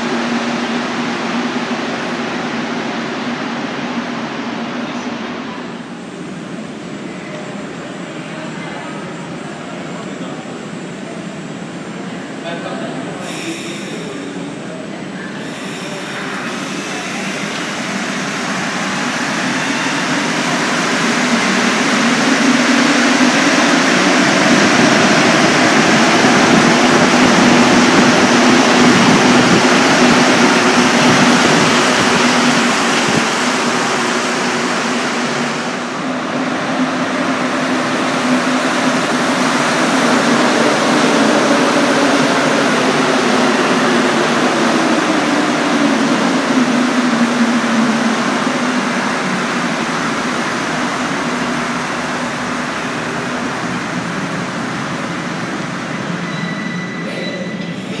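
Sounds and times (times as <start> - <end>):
train running past: 0.0 - 58.0.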